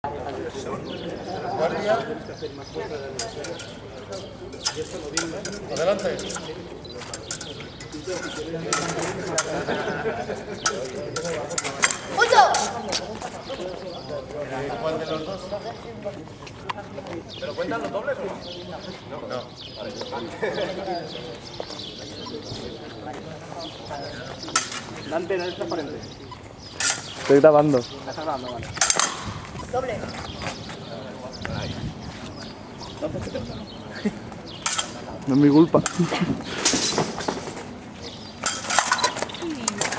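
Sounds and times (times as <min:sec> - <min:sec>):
faint background voices: 0:00.0 - 0:39.9
indistinct talking: 0:00.0 - 0:39.9
fencing blades clicking: 0:03.2 - 0:03.8, 0:04.6 - 0:06.5, 0:10.7 - 0:12.8, 0:24.6 - 0:24.9, 0:34.7 - 0:35.0.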